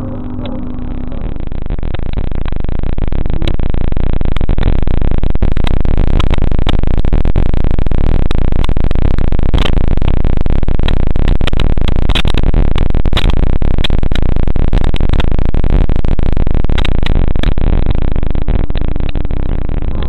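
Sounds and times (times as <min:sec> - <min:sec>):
crackling clicks: 0:00.0 - 0:20.0
distorted digital noise: 0:00.0 - 0:20.0.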